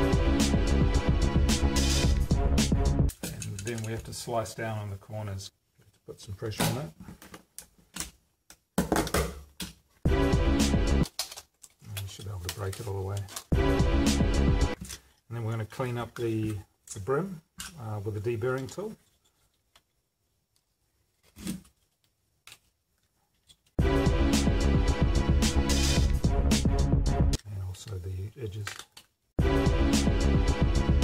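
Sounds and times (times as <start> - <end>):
electronic music with a beat: 0.0 - 3.1, 10.1 - 11.0, 13.5 - 14.8, 23.8 - 27.4, 29.4 - 31.0.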